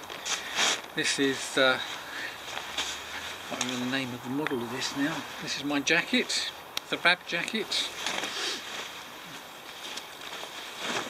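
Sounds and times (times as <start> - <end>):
faint outdoor hiss: 0.0 - 11.0
jacket fabric rustling: 0.0 - 11.0.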